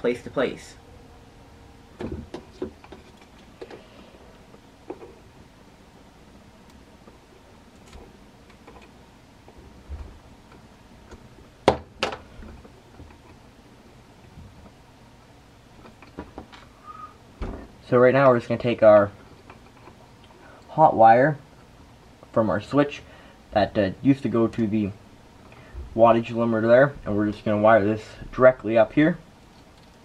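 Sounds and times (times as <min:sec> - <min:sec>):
clicks and taps of wires handled: 0:02.0 - 0:03.8.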